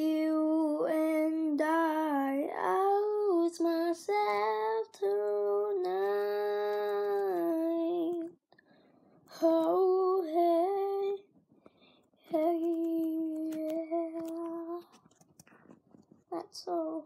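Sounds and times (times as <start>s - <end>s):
girl singing long notes: 0.0s - 8.3s, 9.3s - 11.2s, 12.3s - 14.9s, 16.4s - 17.0s.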